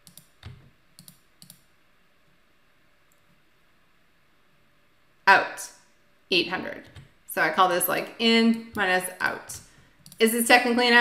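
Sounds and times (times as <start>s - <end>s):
computer mouse clicking: 0.0s - 1.7s, 10.0s - 10.2s.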